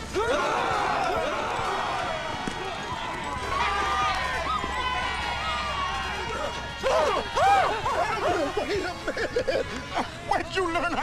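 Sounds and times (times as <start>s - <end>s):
men shouting and yelling: 0.0s - 11.0s.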